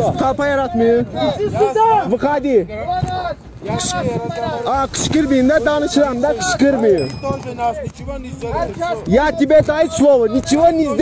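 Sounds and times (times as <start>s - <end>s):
people talking: 0.0s - 11.0s
wind rumble on microphone: 0.0s - 11.0s.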